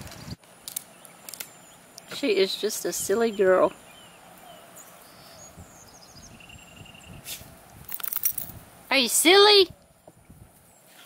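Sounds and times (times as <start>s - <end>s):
dog tag jingling: 7.9s - 8.6s.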